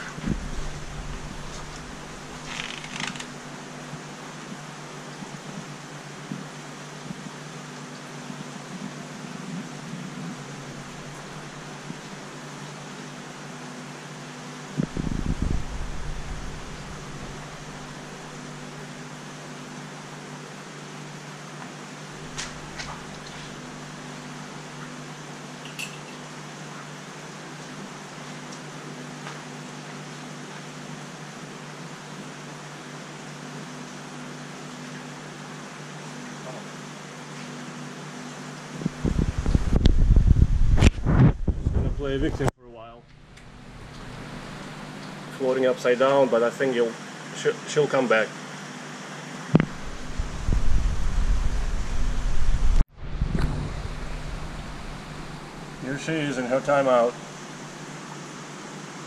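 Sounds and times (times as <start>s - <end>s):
circulating water: 0.0s - 40.9s, 43.2s - 59.0s
aquarium pumps humming: 0.0s - 59.0s
loud low rumbling thump: 52.1s - 55.3s.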